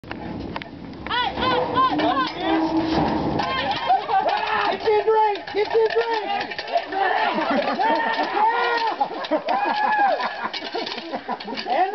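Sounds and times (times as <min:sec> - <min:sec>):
people shouting and whooping: 0:01.1 - 0:11.9
people laughing: 0:06.7 - 0:11.9.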